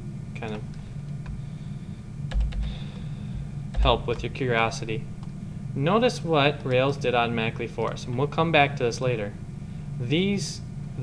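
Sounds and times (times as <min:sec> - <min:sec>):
steady low hum: 0:00.0 - 0:11.0
keyboard key presses: 0:02.3 - 0:02.8, 0:03.7 - 0:04.3
man's voice: 0:03.8 - 0:05.0.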